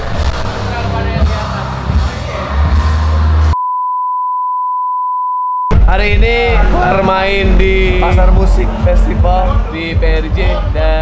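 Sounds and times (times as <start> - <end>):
loud rock music: 0.0 - 3.6
high beep tone: 3.6 - 5.8.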